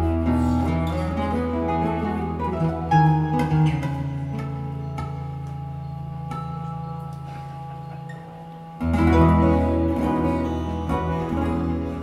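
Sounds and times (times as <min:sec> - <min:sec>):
plucked acoustic guitar: 0:00.0 - 0:12.0.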